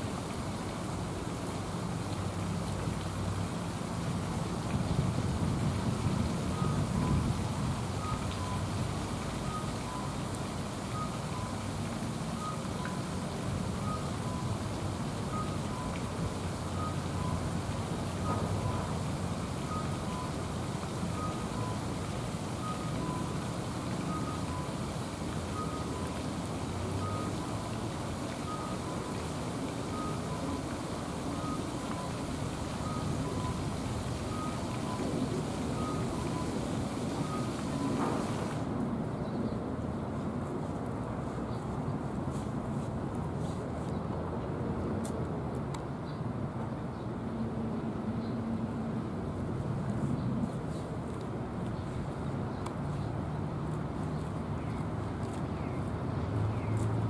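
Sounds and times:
distant traffic rumble: 0.0 - 57.0
two-tone electronic beep: 34.3 - 36.6.

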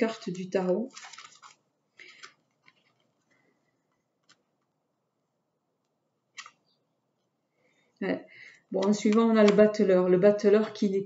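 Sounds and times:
tarot cards rustling on cloth: 0.8 - 3.6.

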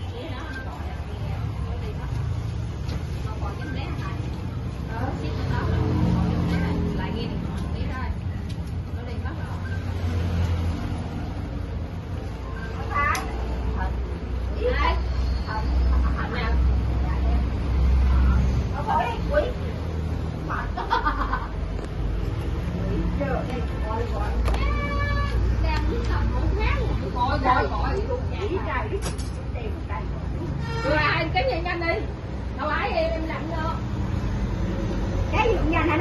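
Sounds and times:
voices talking: 0.0 - 36.0.

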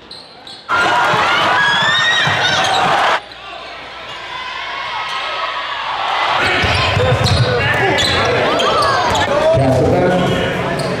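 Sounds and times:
voices of players and spectators: 0.0 - 11.0.

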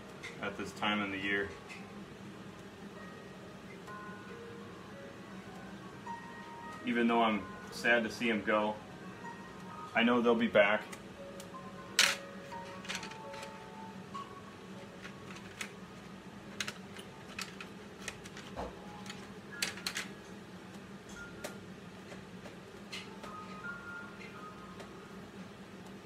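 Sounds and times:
quiet background music: 0.0 - 26.0
pencils clicking in case: 16.6 - 20.1.

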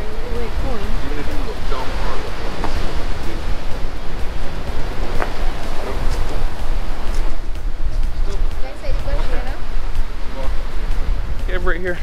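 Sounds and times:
sea surf: 0.0 - 12.0
wind buffeting microphone: 0.0 - 12.0.

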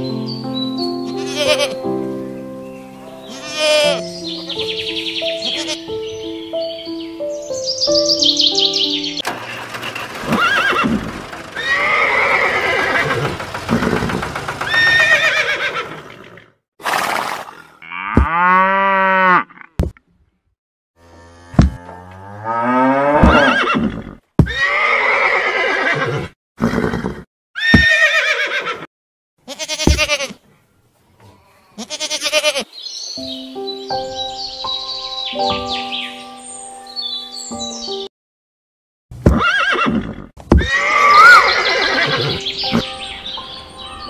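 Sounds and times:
farm animal calls: 1.0 - 1.8, 3.1 - 6.3, 7.9 - 16.5, 22.8 - 27.0, 29.5 - 30.5, 31.2 - 33.4, 40.6 - 44.0.

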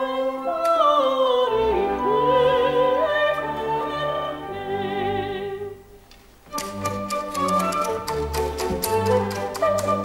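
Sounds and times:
woman singing opera: 0.0 - 5.9, 9.0 - 10.0
orchestral accompaniment: 6.4 - 10.0.

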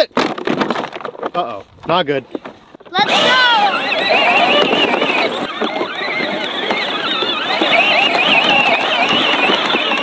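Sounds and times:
toy tractor electric whine: 3.0 - 10.0.

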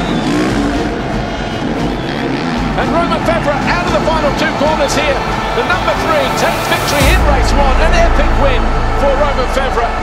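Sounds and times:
motorbike engine revving: 0.0 - 5.6
crowd noise: 0.0 - 10.0.

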